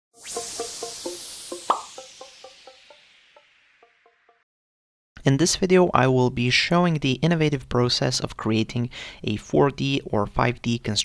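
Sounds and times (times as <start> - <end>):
bright swoosh: 0.1 - 4.4.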